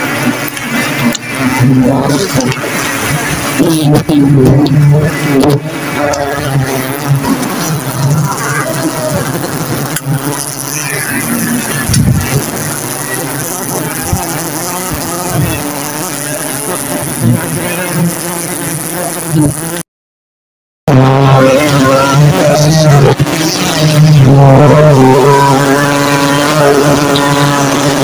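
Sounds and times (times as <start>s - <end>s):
bees buzzing: 0.0s - 19.8s, 21.3s - 28.0s.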